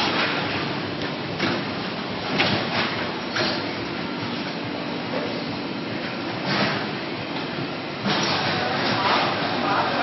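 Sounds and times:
factory machinery running: 0.0 - 10.0.

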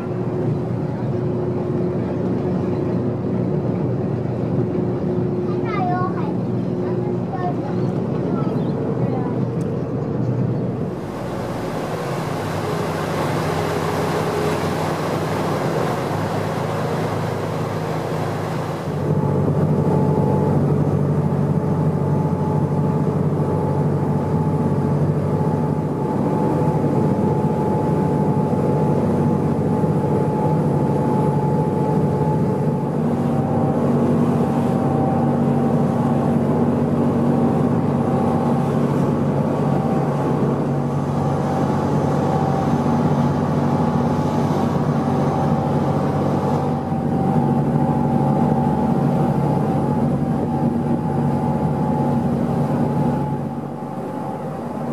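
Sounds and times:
ferry engine hum: 0.0 - 54.9
wake water rushing: 10.8 - 22.0, 23.1 - 54.9.

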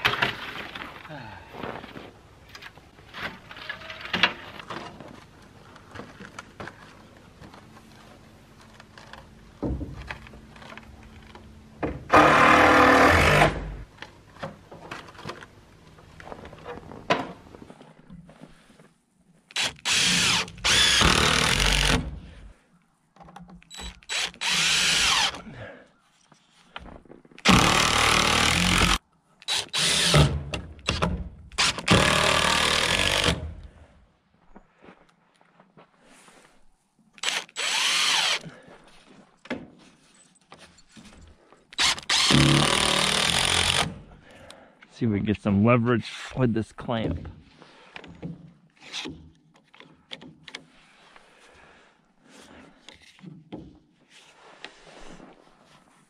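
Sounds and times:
cordless drill driving screws: 19.5 - 22.1, 23.7 - 25.4, 27.4 - 31.0, 31.6 - 33.5, 37.2 - 38.4, 41.8 - 44.0.

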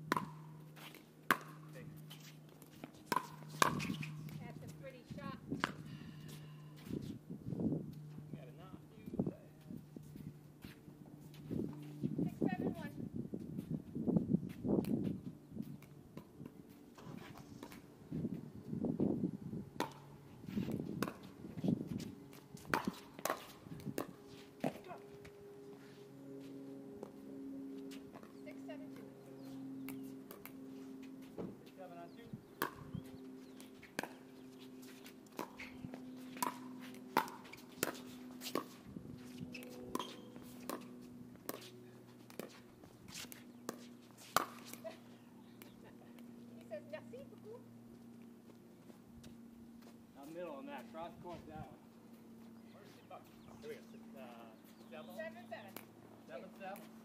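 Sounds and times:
footsteps scuffing on hard court: 9.5 - 12.3, 32.6 - 45.8
voices: 28.2 - 30.2, 44.5 - 47.7, 52.4 - 56.9.

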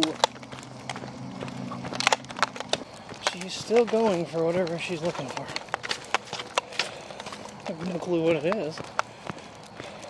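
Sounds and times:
dogs' claws on asphalt: 0.0 - 10.0
footsteps on asphalt: 0.0 - 10.0
low steady hum: 0.0 - 10.0.

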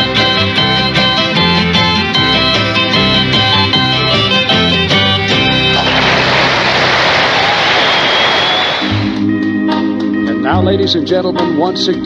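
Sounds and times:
country band playing: 0.0 - 12.0
audience applauding: 5.3 - 9.3.

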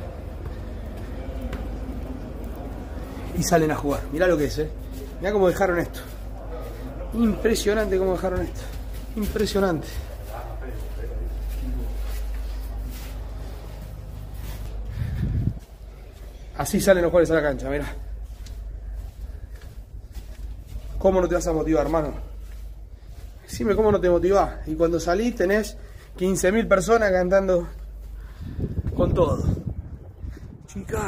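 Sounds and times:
faint voices: 0.0 - 28.1
soft footsteps on carpeted stairs: 0.0 - 29.1
steady low rumble: 0.0 - 31.0
microphone handling noise: 13.2 - 15.8
wind rumble on microphone: 14.7 - 16.0, 28.2 - 31.0.

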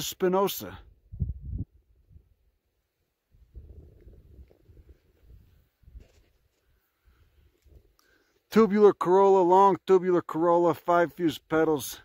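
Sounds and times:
faint low microphone rumble: 0.8 - 2.6.

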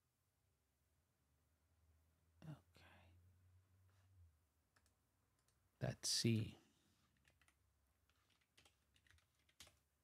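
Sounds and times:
keyboard keystrokes: 7.2 - 9.8.

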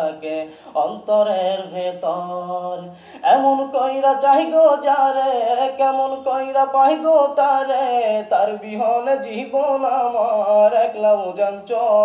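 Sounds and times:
man singing unaccompanied: 0.0 - 12.0.

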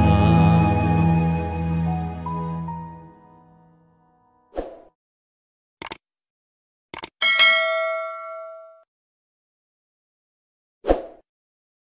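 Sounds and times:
bright bell ding: 7.2 - 8.8.

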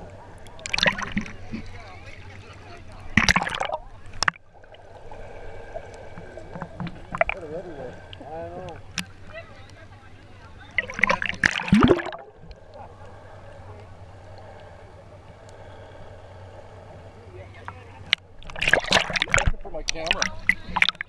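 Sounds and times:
muffled underwater sound: 0.0 - 21.0
water sloshing and splashing: 0.0 - 21.0.

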